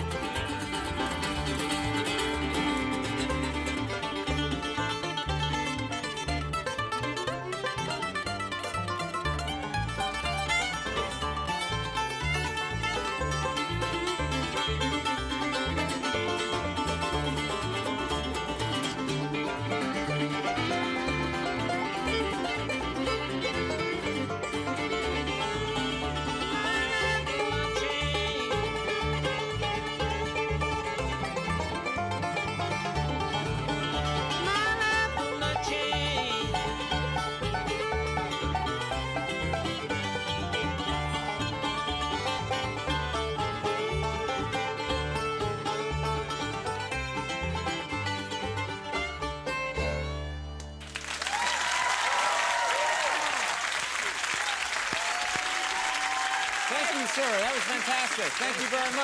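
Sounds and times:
bluegrass band playing: 0.0 - 59.0
audience applause: 50.8 - 59.0.

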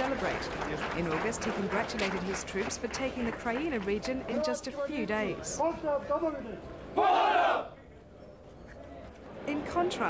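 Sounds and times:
crowd shouting together: 7.0 - 7.8.

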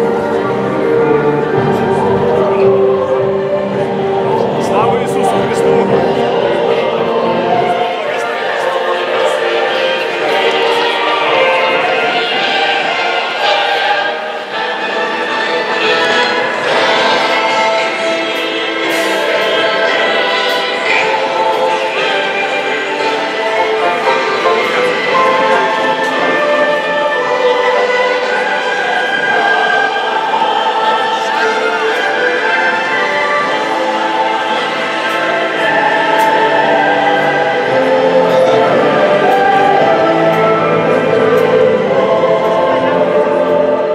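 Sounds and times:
choir singing: 0.0 - 43.9.

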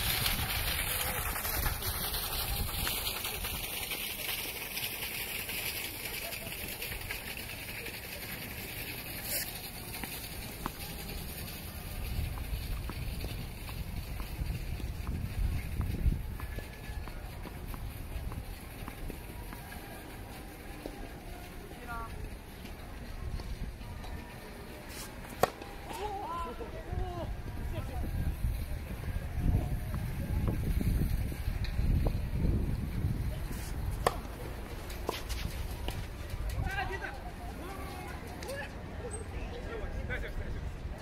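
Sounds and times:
wind buffeting microphone: 0.0 - 3.9, 11.6 - 19.2, 26.8 - 37.2
faint distant voices: 0.0 - 41.0.

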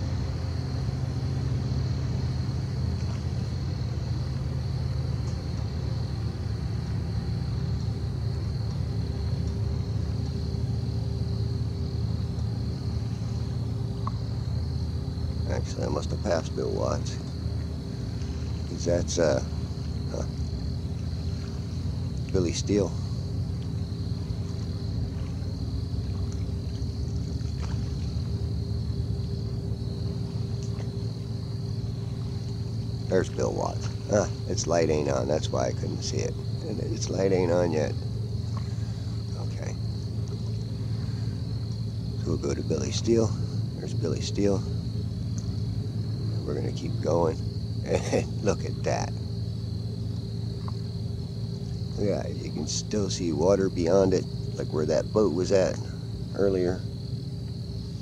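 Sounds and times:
insects calling: 0.0 - 58.0
steady low hum with tones: 0.0 - 58.0.

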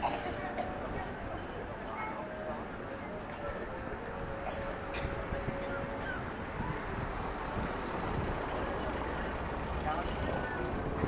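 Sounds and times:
faint distant voices: 0.0 - 11.0
low street rumble: 0.0 - 11.0.

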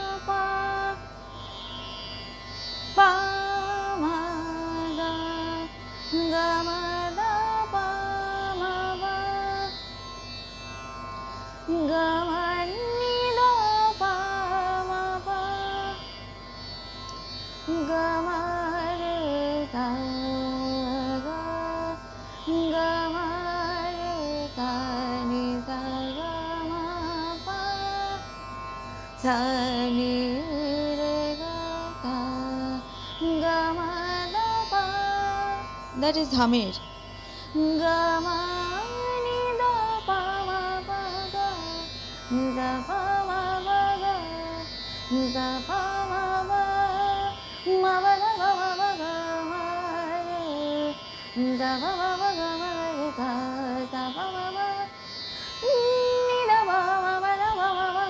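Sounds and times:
woman singing classical vocals: 0.0 - 1.1, 2.9 - 9.8, 11.7 - 16.1, 17.7 - 28.3, 29.2 - 58.0.

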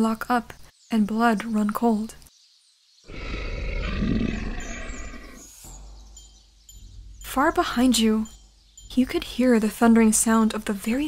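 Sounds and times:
monster roar: 3.1 - 5.4.

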